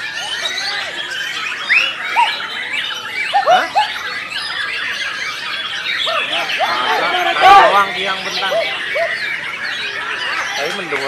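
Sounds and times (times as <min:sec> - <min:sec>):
birds singing and whistling: 0:00.0 - 0:11.0.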